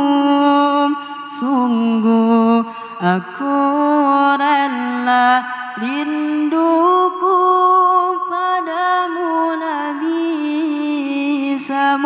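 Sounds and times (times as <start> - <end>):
person singing unaccompanied: 0.0 - 12.0.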